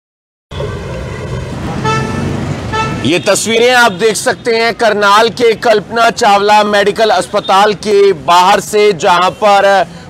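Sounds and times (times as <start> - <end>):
street traffic noise: 0.5 - 10.0
vehicle horn tooting: 1.8 - 4.0.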